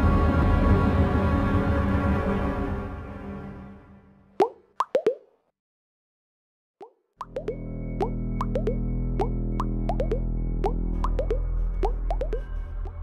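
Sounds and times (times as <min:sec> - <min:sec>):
music: 0:00.0 - 0:04.3, 0:07.3 - 0:13.0
cartoon plop sound effects: 0:04.4 - 0:05.3, 0:06.8 - 0:12.4.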